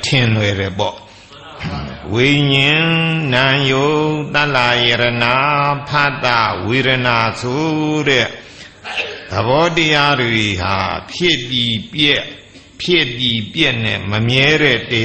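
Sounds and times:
man chanting: 0:00.0 - 0:08.5, 0:09.3 - 0:15.0.

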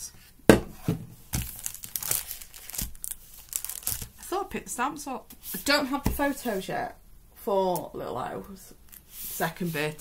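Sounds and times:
plastic packaging crinkling: 0:01.3 - 0:04.3.

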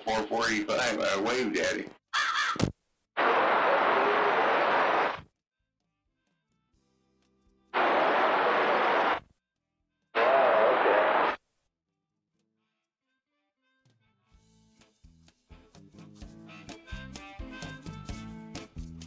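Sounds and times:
radio static bursts: 0:03.2 - 0:05.3, 0:07.8 - 0:09.2, 0:10.2 - 0:11.4.

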